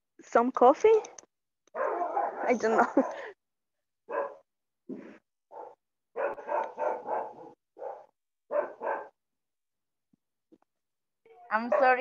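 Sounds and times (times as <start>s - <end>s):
dog barking: 1.7s - 3.4s, 4.1s - 4.4s, 5.5s - 9.2s, 11.6s - 12.0s.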